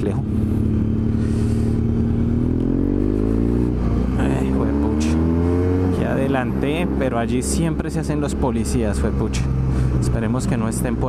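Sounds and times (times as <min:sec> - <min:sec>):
motorcycle engine accelerating: 0:00.0 - 0:11.0.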